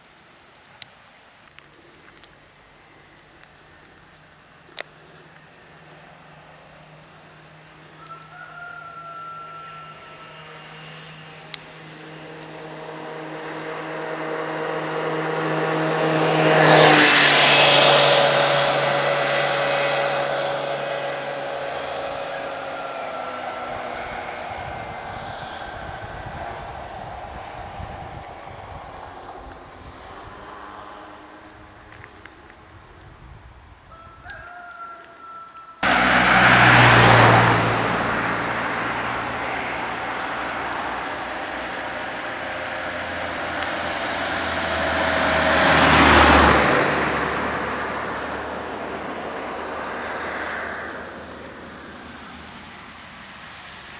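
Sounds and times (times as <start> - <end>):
steady road noise: 0.0 - 53.9
motor passing by: 9.2 - 32.0, 35.8 - 53.7.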